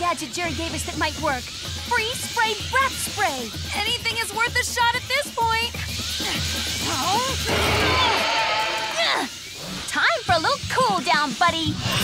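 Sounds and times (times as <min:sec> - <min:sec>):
falling whistle: 0:07.2 - 0:09.3.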